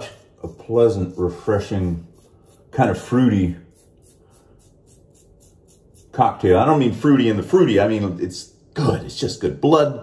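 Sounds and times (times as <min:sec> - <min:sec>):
razor scratching over stubble: 0:00.0 - 0:07.6.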